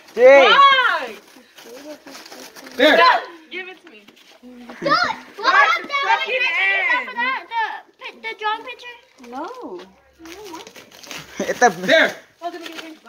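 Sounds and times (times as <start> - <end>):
children calling and shouting: 0.0 - 13.0.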